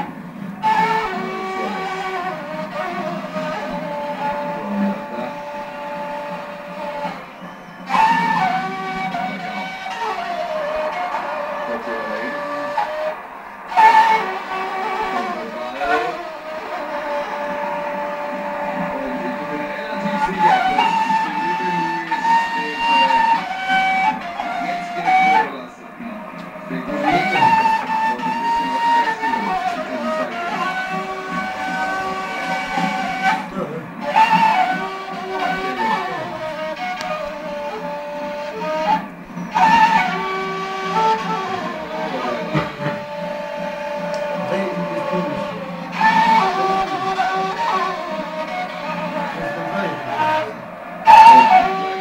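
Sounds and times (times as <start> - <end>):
end-blown flute melody: 0.0 - 52.0.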